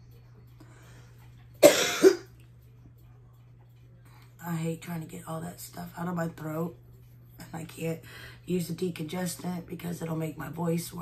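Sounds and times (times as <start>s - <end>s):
woman coughing: 1.6s - 2.3s.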